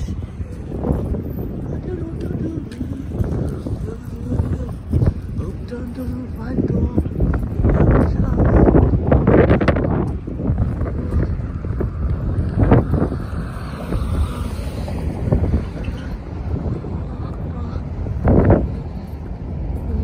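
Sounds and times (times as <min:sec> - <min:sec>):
street traffic: 0:00.0 - 0:20.0
wind buffeting microphone: 0:00.0 - 0:20.0
person talking: 0:01.6 - 0:08.9.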